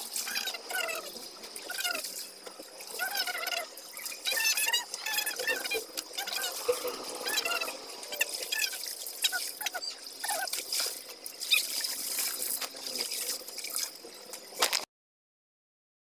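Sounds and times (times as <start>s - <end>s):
water splashing and dripping: 0.0s - 14.9s.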